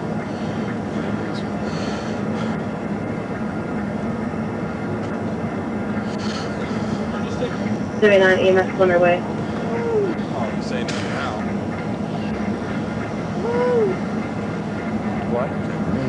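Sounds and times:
vehicle idling hum: 0.0s - 16.0s
faint voices: 6.0s - 12.6s.

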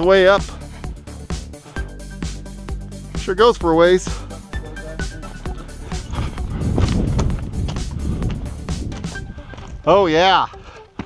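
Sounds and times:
background music: 0.0s - 11.0s
steady low rumble: 4.2s - 9.5s
footsteps crunching on scree: 5.3s - 11.0s.

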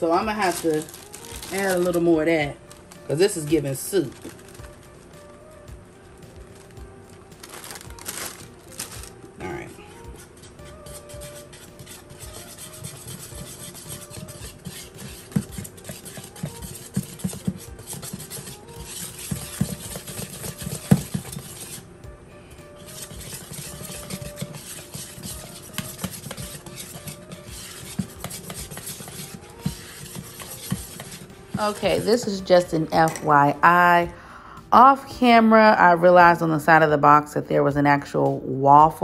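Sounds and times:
utensil stirring batter in bowl: 0.0s - 5.3s, 9.5s - 21.9s, 22.6s - 33.2s
utensil knocking bowl: 10.9s - 21.7s, 22.9s - 32.2s.

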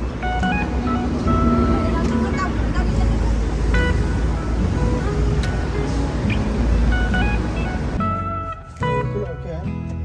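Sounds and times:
passing cars rumbling: 0.0s - 9.0s.

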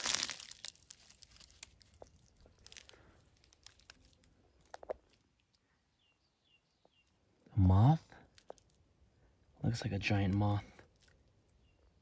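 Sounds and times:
dry leaves crackling and rustling: 0.0s - 4.3s.

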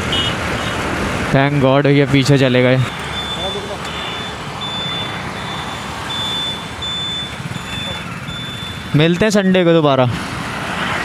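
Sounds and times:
road noise: 0.0s - 11.0s
thin high-pitched beep: 2.2s - 9.2s.

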